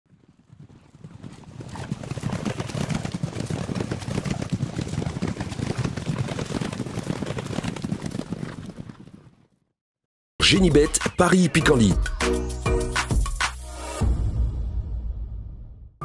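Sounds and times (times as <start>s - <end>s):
horses galloping: 0.1s - 9.6s.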